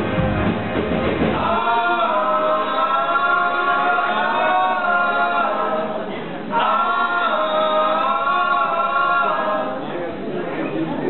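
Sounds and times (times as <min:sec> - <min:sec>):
band drums and bass: 0:00.0 - 0:03.6
men singing in harmony: 0:01.4 - 0:10.0.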